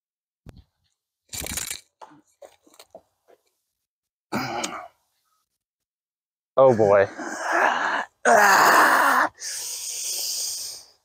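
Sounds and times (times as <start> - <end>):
person groaning breath: 4.3 - 4.9, 7.1 - 10.9
person grunting: 4.3 - 4.9, 6.7 - 9.3.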